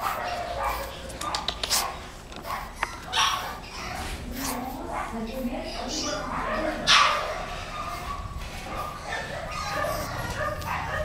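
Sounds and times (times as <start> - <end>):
puppy yipping and barking: 0.0 - 4.1, 5.0 - 11.0.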